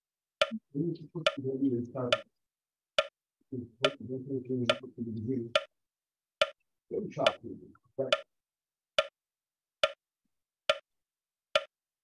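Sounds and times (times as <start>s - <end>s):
man speaking: 0.6s - 2.3s, 3.5s - 5.6s, 6.9s - 8.2s.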